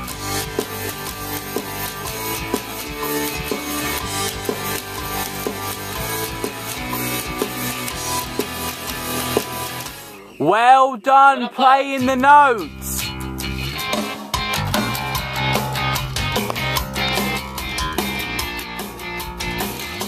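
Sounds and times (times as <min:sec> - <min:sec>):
music with drum beat: 0:00.0 - 0:10.4, 0:12.0 - 0:20.0
electric bass low notes: 0:14.6 - 0:20.0.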